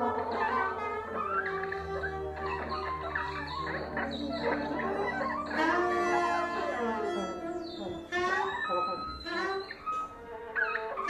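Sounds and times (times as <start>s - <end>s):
improvising ensemble sliding pitches: 0.0s - 11.0s.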